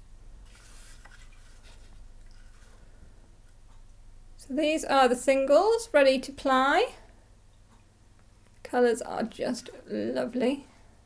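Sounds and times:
low steady hum: 0:00.0 - 0:11.0
rustling and handling noise: 0:00.4 - 0:03.9.

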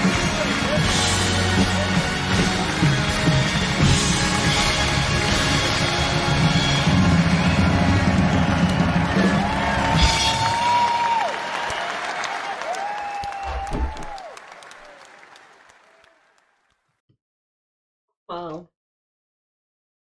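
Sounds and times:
audience applauding: 0:00.0 - 0:16.8.

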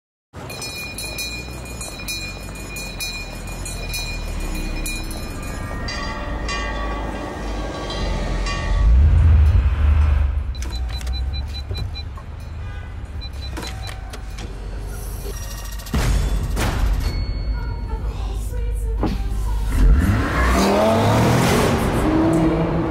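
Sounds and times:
car engine rumble: 0:00.4 - 0:16.5.

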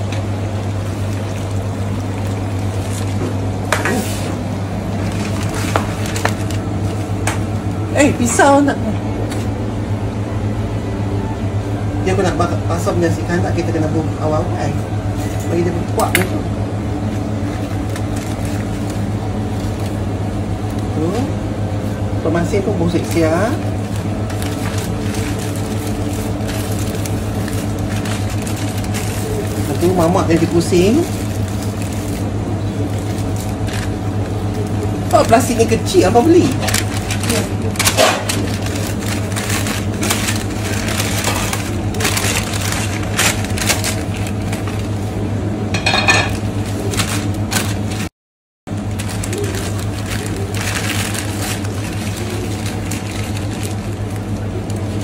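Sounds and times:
steady low hum: 0:00.0 - 0:48.1, 0:48.7 - 0:55.0
newspaper crinkling and rustling: 0:00.8 - 0:07.2, 0:17.0 - 0:21.2, 0:22.8 - 0:45.2, 0:46.3 - 0:48.1, 0:48.7 - 0:55.0.

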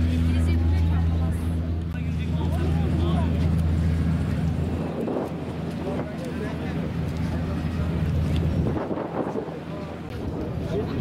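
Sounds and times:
low engine drone: 0:00.0 - 0:11.0.

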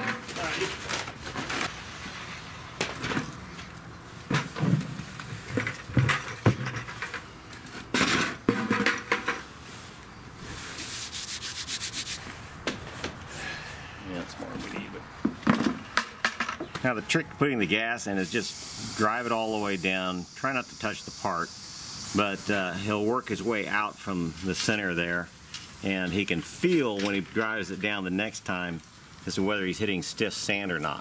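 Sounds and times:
sand scraping on wood: 0:10.4 - 0:13.6.

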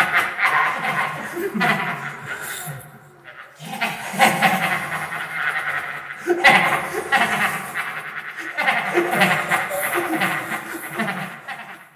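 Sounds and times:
person laughing with effects: 0:00.0 - 0:11.9.

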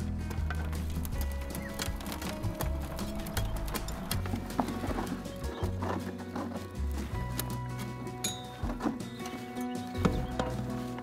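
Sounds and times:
background music with bass line: 0:00.0 - 0:11.0
hoe scraping soil across wire sieve: 0:00.3 - 0:09.8.

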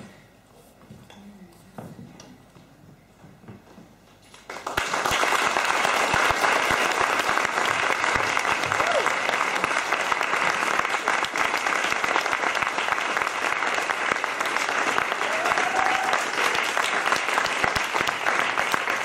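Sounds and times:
audience applauding: 0:04.4 - 0:19.0.

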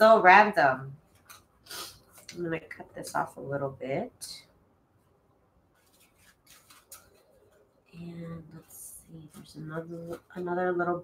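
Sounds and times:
paper rustling and tapping: 0:05.8 - 0:07.7.

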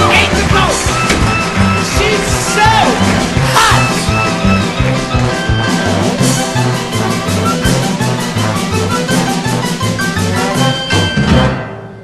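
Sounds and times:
band playing dance music: 0:00.0 - 0:10.9.

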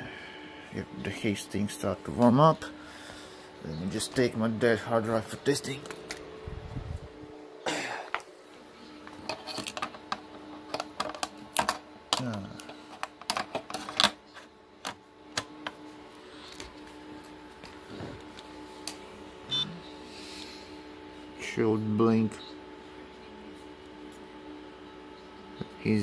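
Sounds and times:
server humming: 0:00.0 - 0:26.0.

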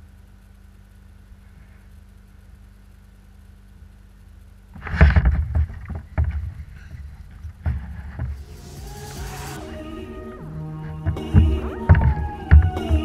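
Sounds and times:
music: 0:08.3 - 0:13.0
brief hiss: 0:08.4 - 0:10.6.

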